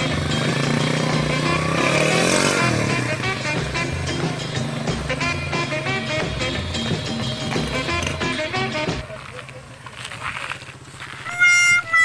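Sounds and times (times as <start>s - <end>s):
motorcycle engine revving: 0.0s - 9.1s
background music with beat: 0.0s - 9.2s.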